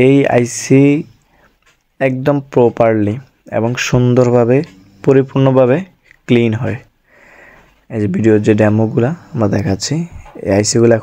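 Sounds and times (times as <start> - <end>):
man speaking: 0.0 - 1.2, 2.0 - 6.9, 7.9 - 11.0.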